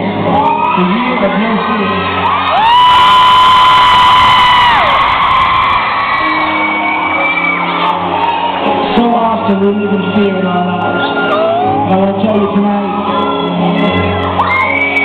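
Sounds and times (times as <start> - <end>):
crowd: 0.0 - 15.0
live piano playing: 5.0 - 15.0.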